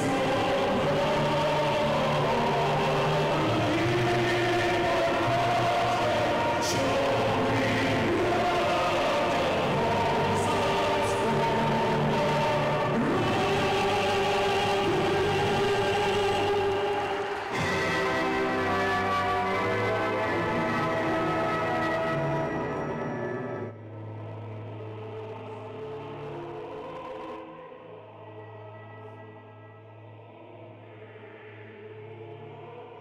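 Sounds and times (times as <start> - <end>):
choir singing anthem: 0.0 - 33.0
music: 0.0 - 33.0.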